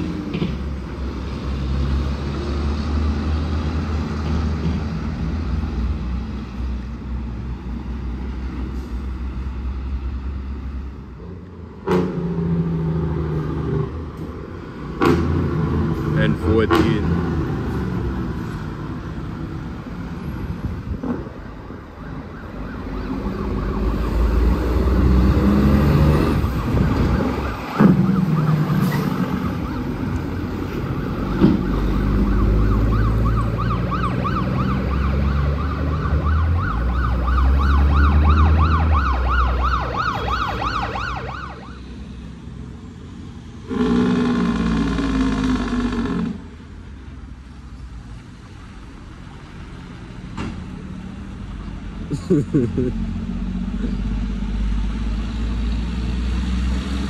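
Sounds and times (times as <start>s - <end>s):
heavy diesel truck engines: 0.0s - 57.0s.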